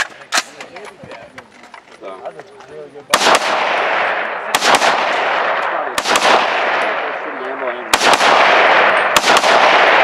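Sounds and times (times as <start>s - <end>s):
rifle shots with echo: 3.1s - 10.0s.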